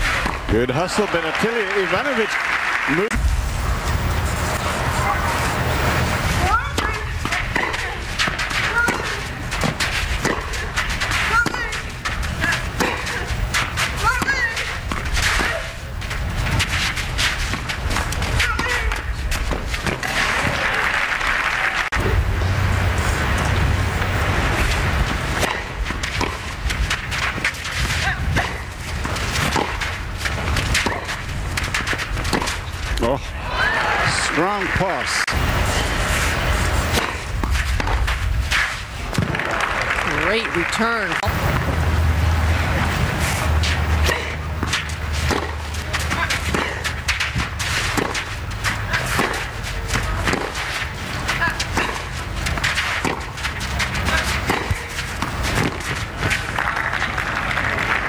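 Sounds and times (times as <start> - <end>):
racquets hitting tennis ball: 0.0 - 2.3, 6.2 - 58.0
crowd and broadcast noise: 0.0 - 58.0.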